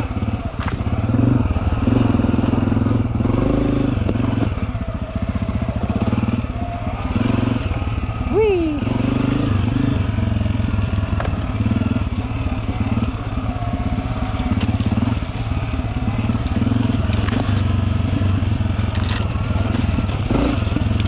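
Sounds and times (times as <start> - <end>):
dirt bike engine running: 0.0 - 21.0.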